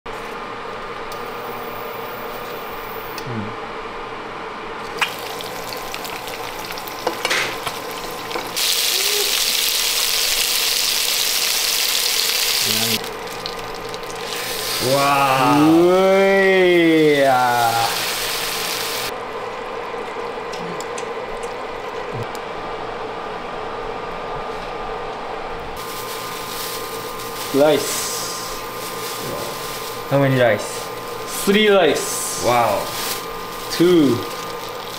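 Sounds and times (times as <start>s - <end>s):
steady hum: 0.1s - 9.3s, 12.6s - 34.9s
butter sizzling in a frying pan: 5.0s - 14.9s, 17.7s - 19.1s.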